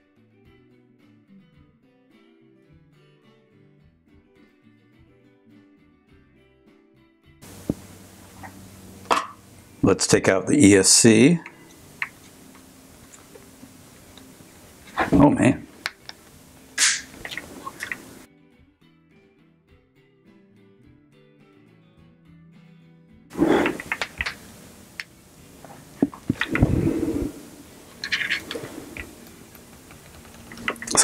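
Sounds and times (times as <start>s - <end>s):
music: 0.0s - 10.4s, 11.5s - 31.0s
loud handling noise: 16.8s - 18.2s, 25.6s - 31.0s
plastic clicks knocks and scraping: 28.0s - 31.0s.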